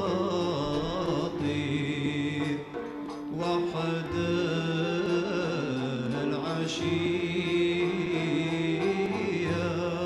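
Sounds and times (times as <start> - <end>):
chant-like voices holding notes: 0.0 - 10.0
live classical ensemble music: 0.0 - 10.0.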